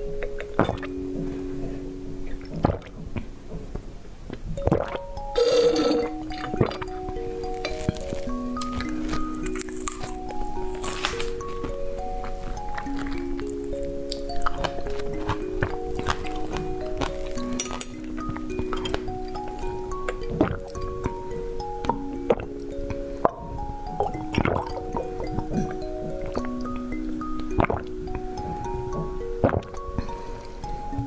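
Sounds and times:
gentle background music: 0.0 - 31.0
straw clinking on glass: 4.6 - 6.9, 12.6 - 21.2
wet gurgling slurp through straw: 24.0 - 25.8.

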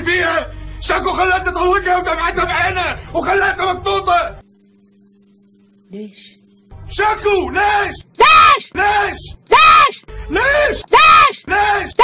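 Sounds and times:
person shouting in remix: 7.6 - 12.0.

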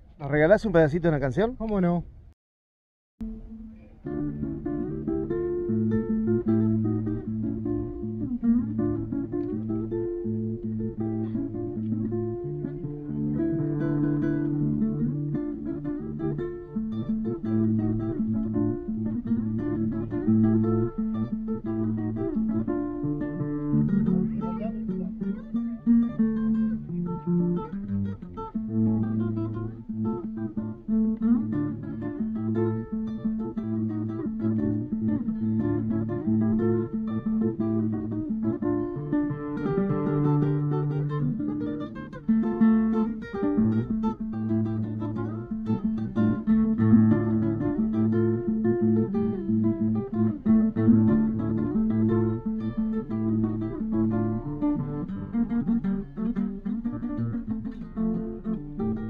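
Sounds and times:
classical guitar fingerpicking: 3.2 - 59.0.

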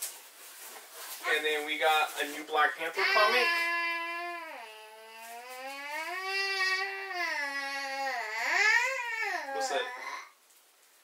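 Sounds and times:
young child whining: 2.9 - 10.4.

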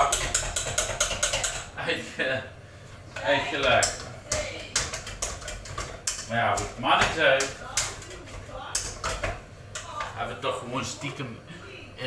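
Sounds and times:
utensil knocking against frying pan: 0.0 - 1.7, 3.6 - 10.2.

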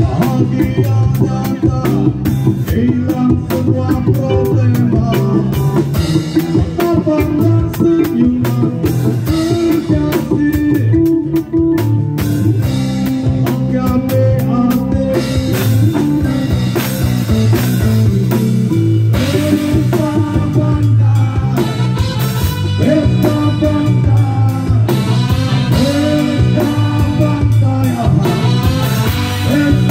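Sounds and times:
bass line: 0.0 - 29.9
live band playing: 0.0 - 29.9
steady drum beat: 0.0 - 29.9.

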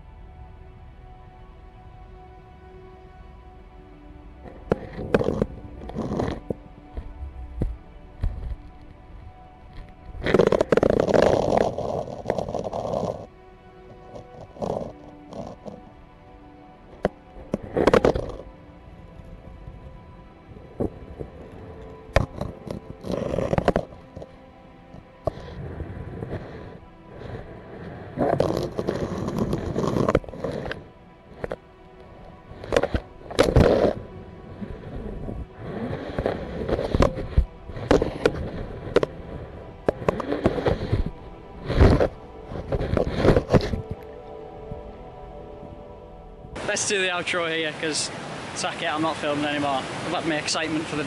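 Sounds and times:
dark sustained background music: 0.0 - 51.0
muffled underwater scraping on rock: 4.5 - 8.8, 9.7 - 13.3, 13.9 - 15.8, 17.0 - 18.5, 22.2 - 31.6, 32.5 - 44.1.

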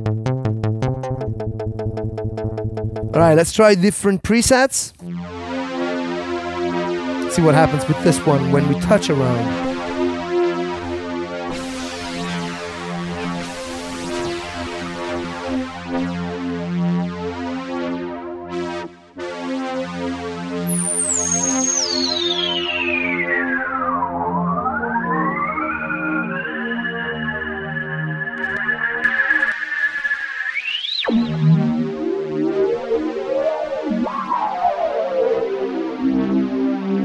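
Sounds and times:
synthesizer held chord: 5.0 - 29.0, 31.0 - 37.0
high whistling synth tone: 20.5 - 31.3.

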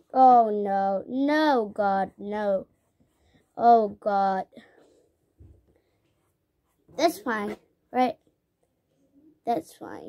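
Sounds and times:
faint paintbrush strokes: 2.4 - 3.6, 4.8 - 7.2.

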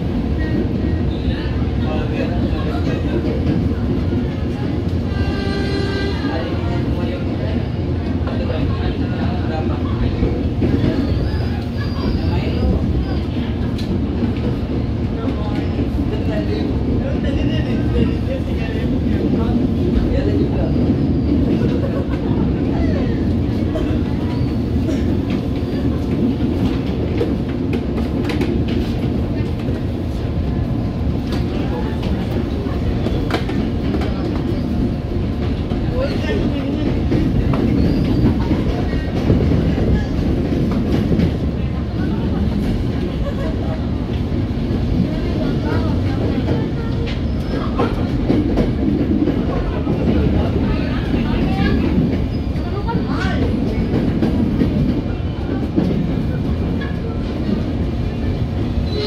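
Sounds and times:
train wheels rumbling on rails: 0.0 - 59.0.

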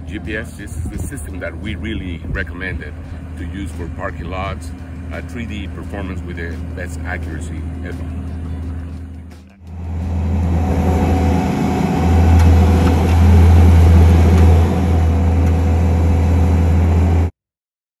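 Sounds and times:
diesel engine running under load: 0.0 - 17.3.

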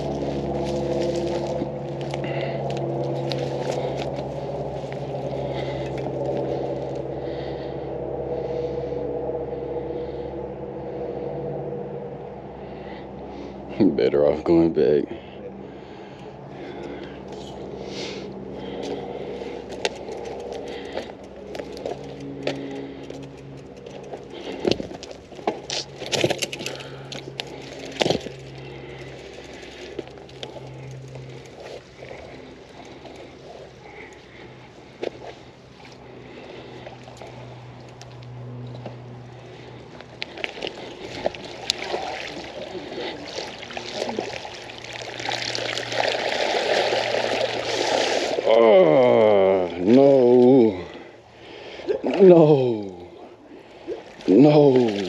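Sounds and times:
creek water splashing and trickling: 0.0 - 7.0, 16.6 - 55.0.

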